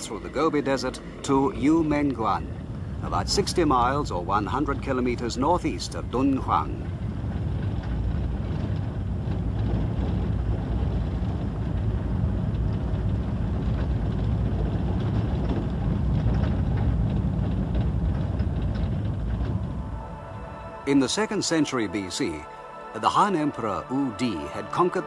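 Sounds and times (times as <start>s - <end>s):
vehicle engine rumble: 0.0s - 22.5s
road noise: 0.0s - 25.0s.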